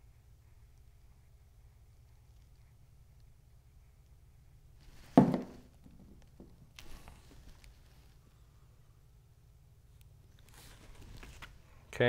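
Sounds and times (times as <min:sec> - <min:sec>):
plastic bottle thump on mat: 0:05.1 - 0:06.2.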